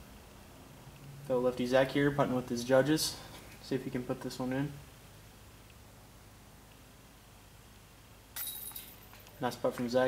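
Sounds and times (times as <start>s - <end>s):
disc hitting basket chains: 8.4s - 9.2s.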